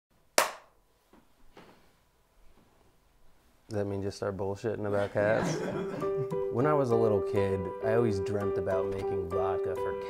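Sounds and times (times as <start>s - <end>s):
hand clap with room echo: 0.4s - 0.7s.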